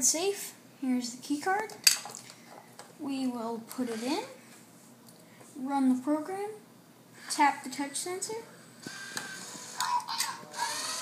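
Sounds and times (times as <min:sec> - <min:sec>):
recorded voice from small speaker: 0:07.3 - 0:08.5.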